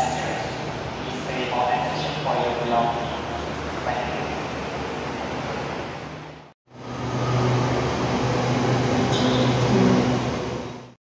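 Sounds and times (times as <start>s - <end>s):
machinery noise with low hum: 0.0s - 11.0s
traffic rumble: 0.0s - 11.0s.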